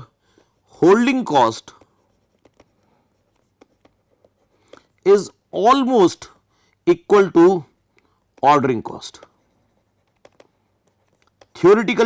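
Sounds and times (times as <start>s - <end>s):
stylus ticking and scratching: 1.3s - 5.0s, 7.9s - 12.0s.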